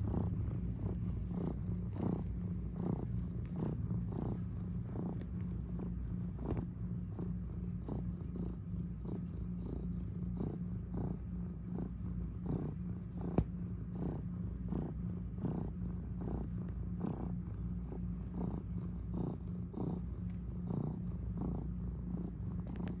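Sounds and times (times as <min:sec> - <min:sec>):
cat purring: 0:00.0 - 0:23.0.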